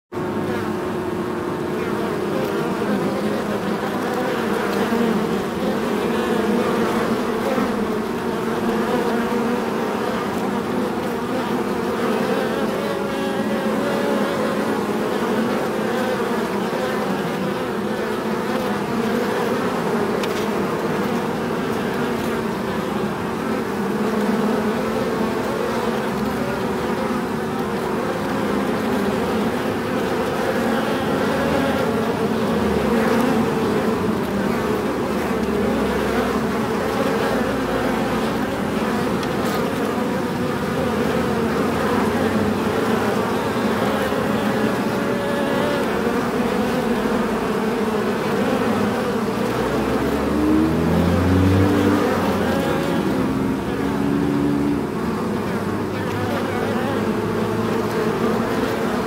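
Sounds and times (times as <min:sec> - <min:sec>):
bees buzzing: 0:00.1 - 0:59.0.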